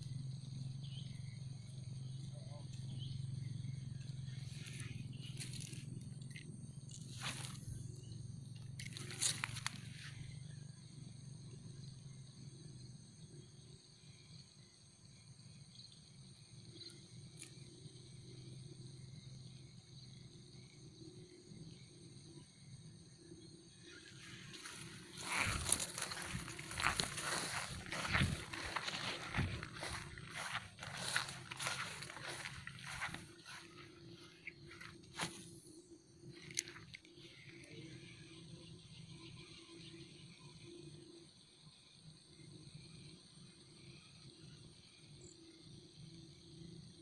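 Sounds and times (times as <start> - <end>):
insect chorus: 0.0 - 47.0.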